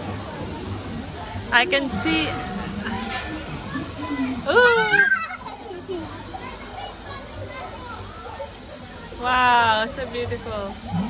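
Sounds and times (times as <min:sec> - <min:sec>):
faint voices of children and adults: 0:00.0 - 0:11.0.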